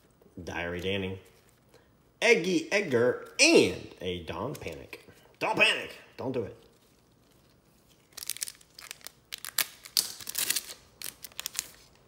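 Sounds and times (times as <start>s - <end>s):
card pack wrapper crinkling and tearing: 6.6s - 12.0s.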